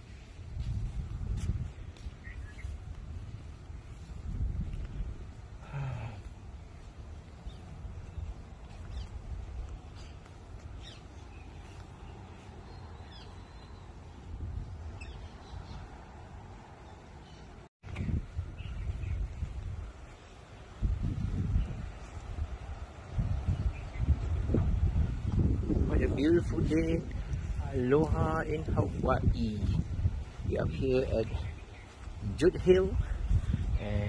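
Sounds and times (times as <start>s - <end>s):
birds chirping: 1.6s - 34.0s
low microphone rumble: 17.8s - 34.0s.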